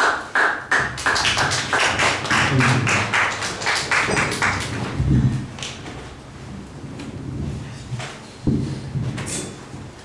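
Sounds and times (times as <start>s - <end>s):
audience applauding: 0.0s - 5.0s.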